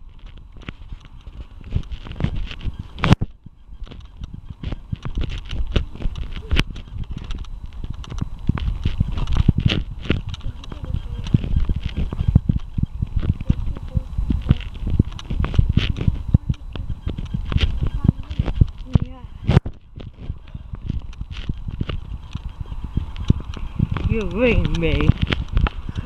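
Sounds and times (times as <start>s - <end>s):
camera handling noise: 0.2s - 26.0s
muffled voice: 10.4s - 12.3s, 13.2s - 19.3s.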